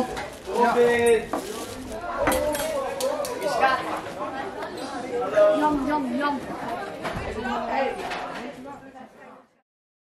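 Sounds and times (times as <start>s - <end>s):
chatter of many students: 0.0s - 9.6s.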